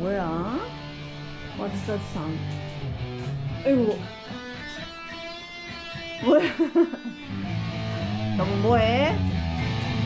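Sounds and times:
electric guitar: 0.0 - 10.0.

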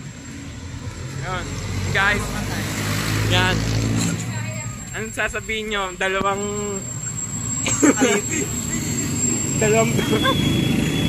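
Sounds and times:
low rumble of road traffic: 0.0 - 11.0.

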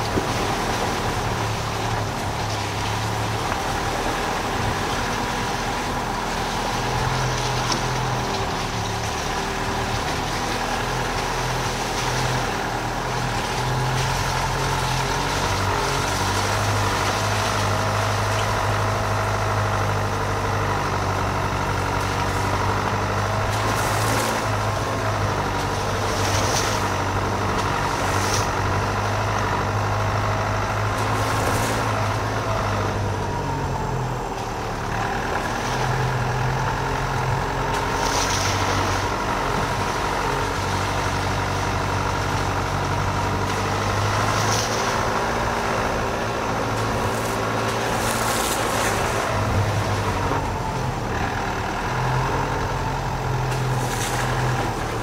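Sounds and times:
car engine running: 0.0 - 55.0
tyre noise on muddy track: 0.0 - 55.0.

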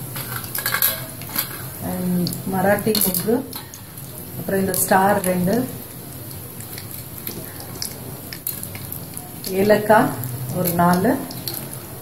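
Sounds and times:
faint oil sizzle: 0.0 - 12.0
metal clinks on a pan: 0.3 - 1.7.

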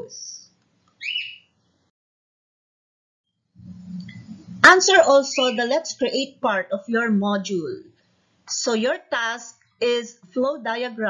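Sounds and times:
high-pitched chirp: 0.4 - 1.5, 3.8 - 6.2.

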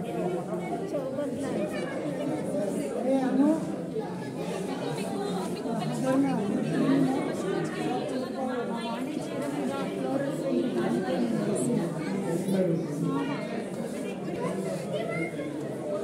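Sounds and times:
people chattering: 0.0 - 16.0.

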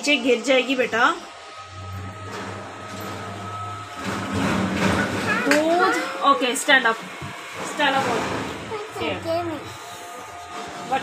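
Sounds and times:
low steady hum: 0.0 - 11.0
indistinct talking: 5.1 - 11.0.

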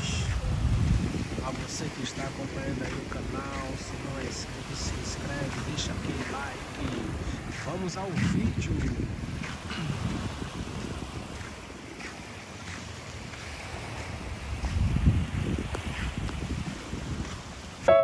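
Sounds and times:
gentle surf on beach: 0.0 - 18.0
wind buffeting microphone: 0.0 - 18.0.

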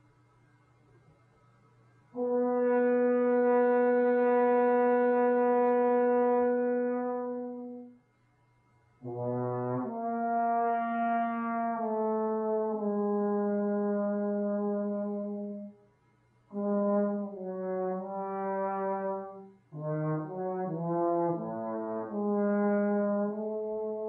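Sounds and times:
trombone notes: 2.1 - 8.0, 9.0 - 15.7, 16.5 - 24.0.

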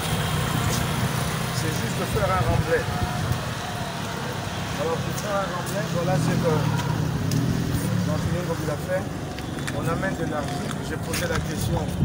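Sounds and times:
man speaking: 4.7 - 7.0, 7.8 - 12.0.

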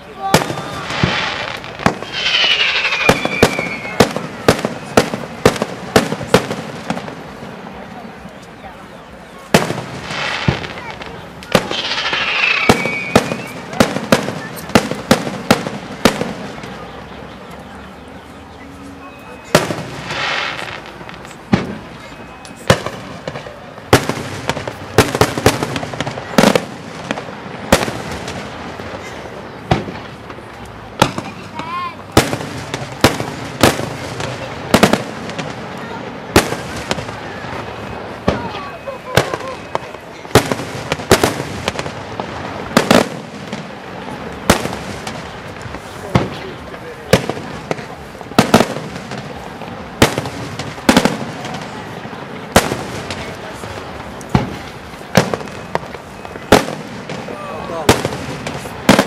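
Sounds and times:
firework crackling: 0.0 - 59.0
firework shells bursting: 0.4 - 7.0, 11.4 - 16.4.

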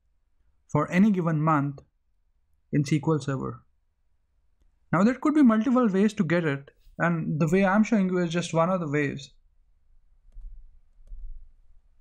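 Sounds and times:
computer mouse clicks: 10.2 - 11.6.

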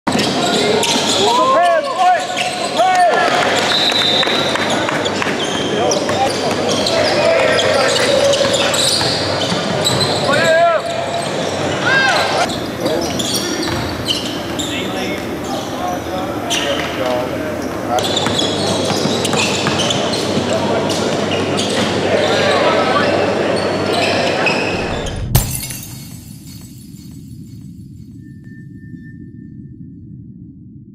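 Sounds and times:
sneakers squeaking: 0.1 - 2.8, 3.6 - 22.5, 23.6 - 27.1
basketball bouncing on hardwood: 13.7 - 13.9.

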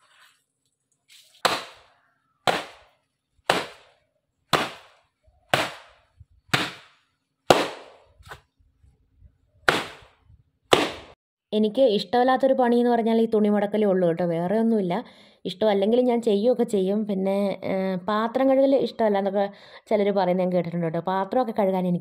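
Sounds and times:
wet cloth slapping on stone: 1.1 - 1.9, 2.5 - 8.4, 9.7 - 11.2.

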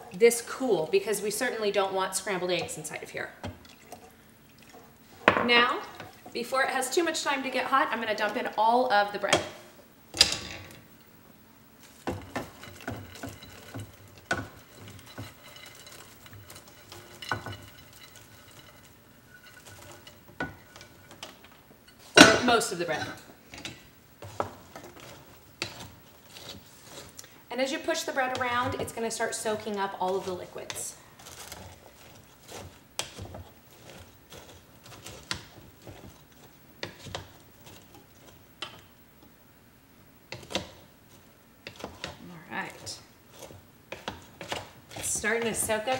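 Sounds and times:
wooden spatula scraping in pot: 0.0 - 9.5, 11.8 - 39.0, 40.3 - 45.9
bread cubes rustling and pattering: 11.7 - 22.2, 22.9 - 39.0, 40.3 - 45.9
dish and utensils clinking on pot: 12.0 - 25.9.

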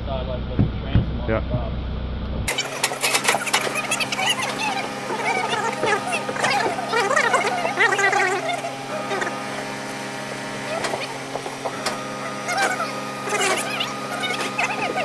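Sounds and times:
low machine hum: 0.0 - 15.0
indistinct voices: 2.5 - 15.0.

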